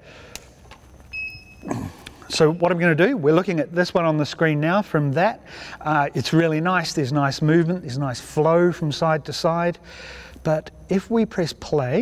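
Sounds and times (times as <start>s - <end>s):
faint background noise: 0.0s - 12.0s
click: 0.3s - 0.8s.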